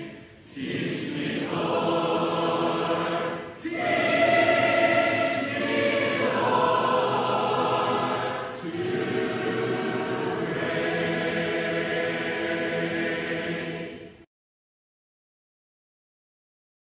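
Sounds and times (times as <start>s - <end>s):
choir singing held chords: 0.0s - 14.3s.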